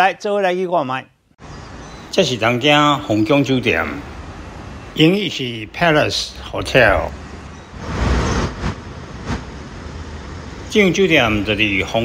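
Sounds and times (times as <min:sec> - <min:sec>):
vehicle passing: 0:03.5 - 0:05.9, 0:06.7 - 0:12.0.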